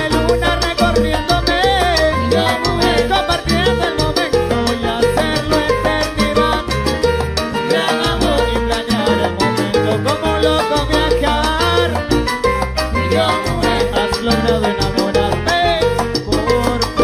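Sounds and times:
bass line: 0.0 - 17.0
salsa band playing: 0.0 - 17.0.

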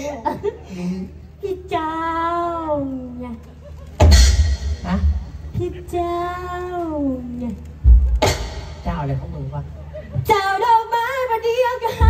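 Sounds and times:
loud low thump: 4.0 - 5.7.

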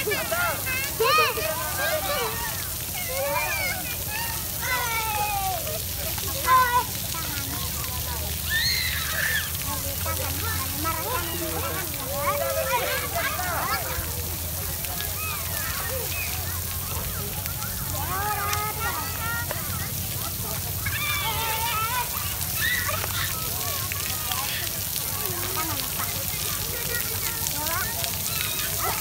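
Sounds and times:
children shouting and chattering: 0.0 - 29.0
water jets spraying on paving: 0.0 - 29.0.

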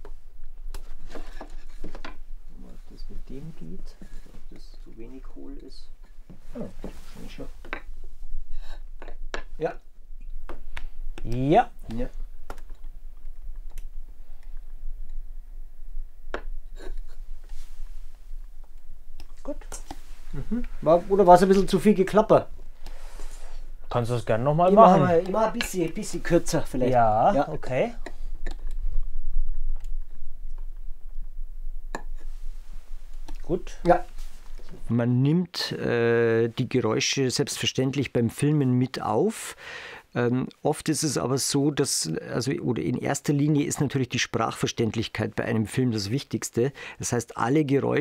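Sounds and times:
low steady hum: 0.0 - 39.3.

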